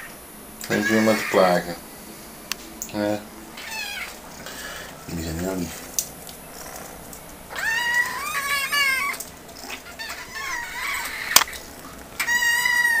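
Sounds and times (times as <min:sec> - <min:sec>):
kittens meowing: 0:00.7 - 0:01.8, 0:03.6 - 0:04.2, 0:07.5 - 0:13.0.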